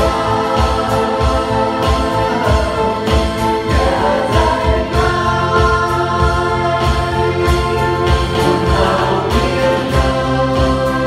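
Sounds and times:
acoustic guitar: 0.0s - 11.0s
people singing: 0.0s - 11.0s.

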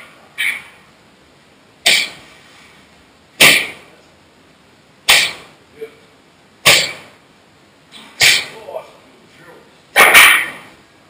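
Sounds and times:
strikes on training pads: 3.4s - 3.9s, 5.1s - 5.5s, 6.6s - 7.2s, 8.0s - 8.6s.

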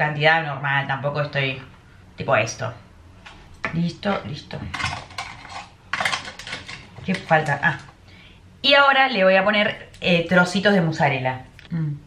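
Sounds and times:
metal spoon scraping a dish: 4.8s - 7.2s.

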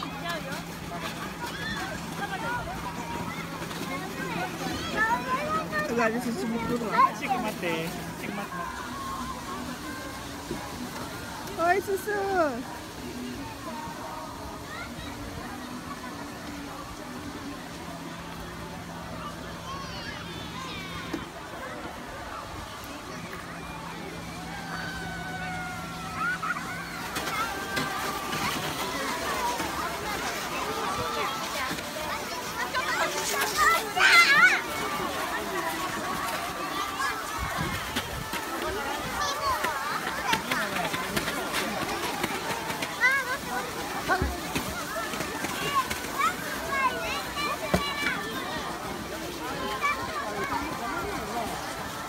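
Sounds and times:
people calling out and chattering: 0.0s - 52.0s.

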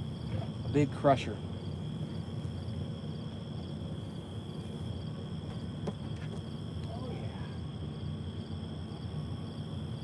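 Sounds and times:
low steady rumble: 0.0s - 10.0s
night insects chirping: 0.0s - 10.0s.

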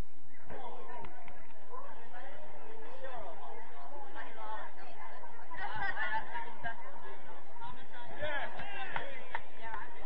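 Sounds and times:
people calling out and chatting: 0.0s - 10.0s.

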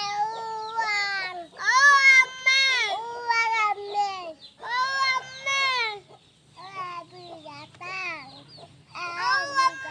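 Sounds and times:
toddler high-pitched cries: 0.0s - 9.9s.

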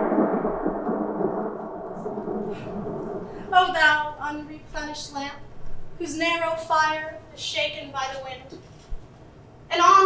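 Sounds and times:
thunder-like rumbling: 0.0s - 4.8s.

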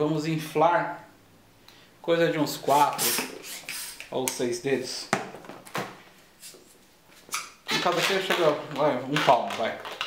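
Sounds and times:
hand pump rush of air: 2.7s - 4.0s.

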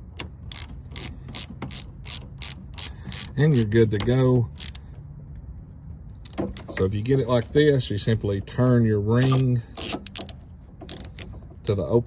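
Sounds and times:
ratchet wrench clicking: 0.1s - 4.9s, 9.2s - 11.8s.

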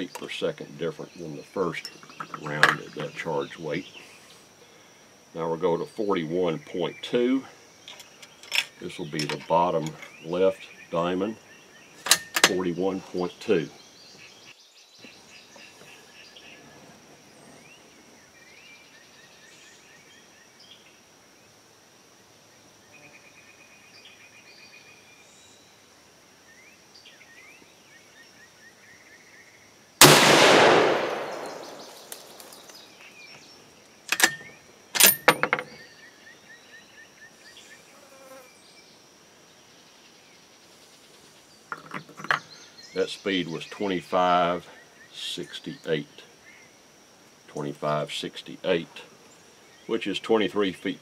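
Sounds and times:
rifle shot: 30.0s - 32.5s
chirps: 31.0s - 34.7s.

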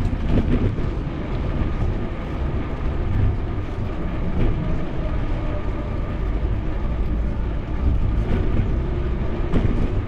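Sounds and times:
rolling road noise: 0.0s - 10.0s
wind buffeting microphone: 0.0s - 10.0s.

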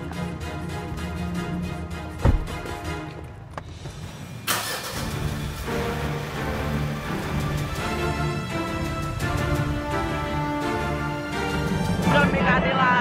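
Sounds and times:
background music: 0.0s - 13.0s
car engine starting and running: 2.1s - 9.7s
low thump: 2.2s - 2.7s.

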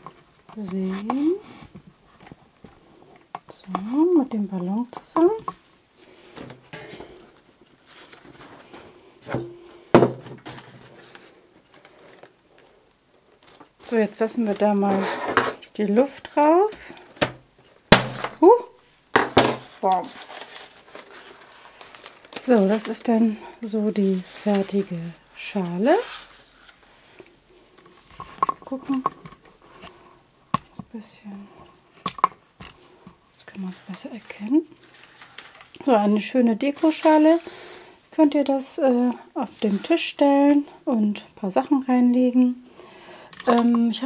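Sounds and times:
dry leaves crackling on balloon: 19.7s - 26.9s, 36.6s - 37.8s
rustling of dried leaf bowl: 19.7s - 26.9s, 33.4s - 37.9s.

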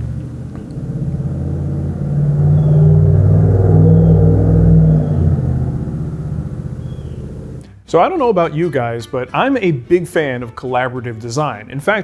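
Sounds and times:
engine running outside: 0.0s - 7.7s.

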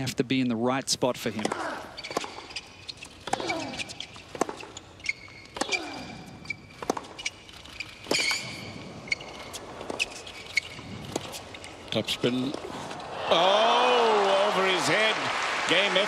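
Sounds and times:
tennis ball bouncing: 1.4s - 2.6s, 4.2s - 5.8s
shoe squeaks: 1.4s - 12.5s.

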